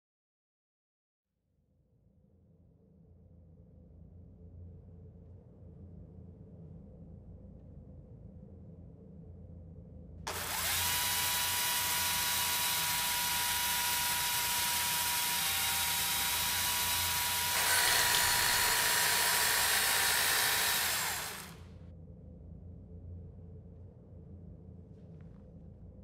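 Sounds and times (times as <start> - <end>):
chainsaw running: 10.3 - 21.6.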